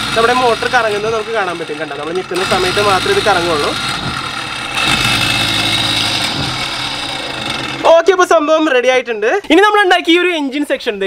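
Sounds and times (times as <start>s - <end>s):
electric motor whining: 0.0s - 8.3s.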